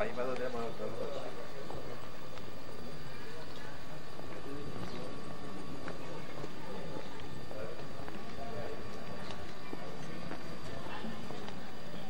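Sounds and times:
faint voices: 0.0 - 12.0
outdoor ambience: 0.0 - 12.0.

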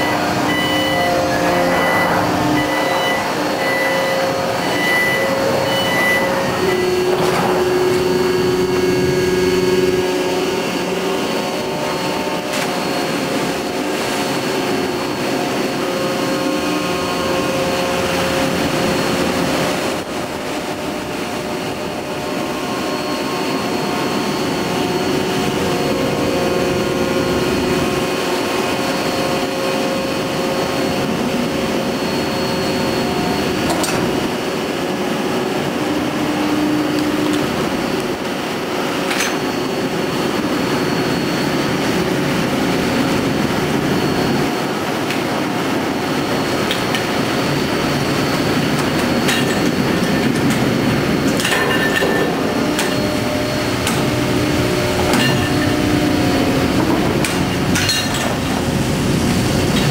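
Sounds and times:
deck machinery drone: 0.0 - 59.9
whining machine tones: 0.0 - 59.9
evenly spaced beeps: 0.5 - 7.0.

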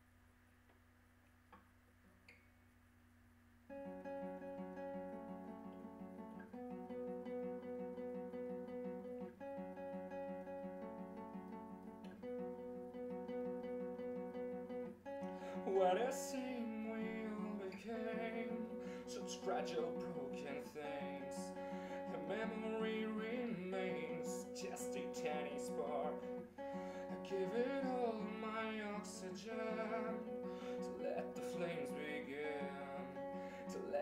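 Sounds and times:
faint room hum: 0.0 - 34.0
acoustic guitar chords: 3.7 - 34.0
person singing: 15.2 - 34.0.

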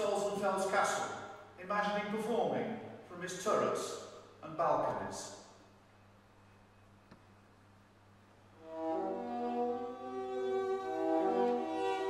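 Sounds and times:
faint steady hum: 0.0 - 12.0
string quartet sustained notes: 8.6 - 12.0.

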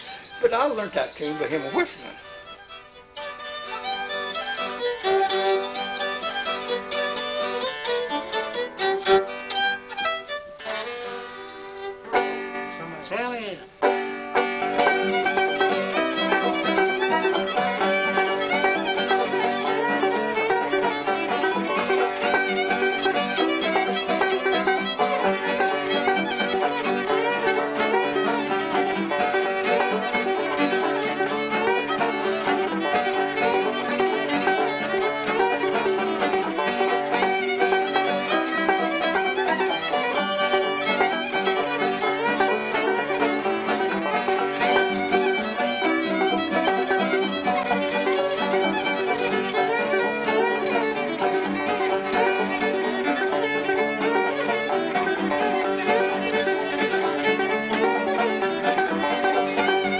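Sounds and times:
banjo: 0.0 - 59.9
old-time fiddle tune: 0.0 - 59.9.

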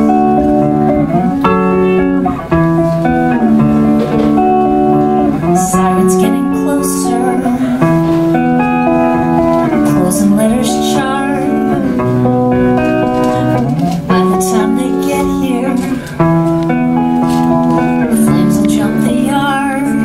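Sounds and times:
electric guitar chords: 0.0 - 20.0
woman singing: 5.4 - 8.2, 9.7 - 12.1, 13.2 - 16.1, 18.0 - 20.0.

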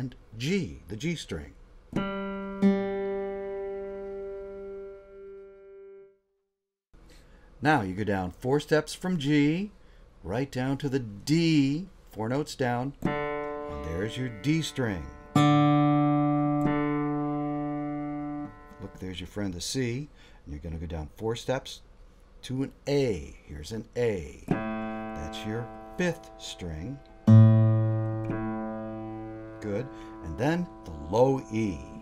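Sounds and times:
guitar open string note: 13.0 - 19.0, 24.5 - 32.0
piano note: 13.0 - 19.0, 24.5 - 32.0.

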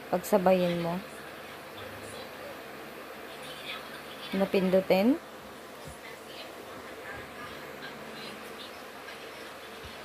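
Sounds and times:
buzzing background noise: 0.0 - 10.0.

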